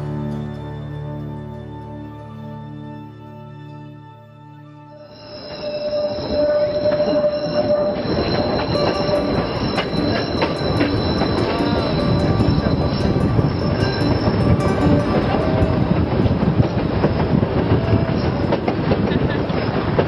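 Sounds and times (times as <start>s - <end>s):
train wheels squealing on rails: 5.0s - 20.0s.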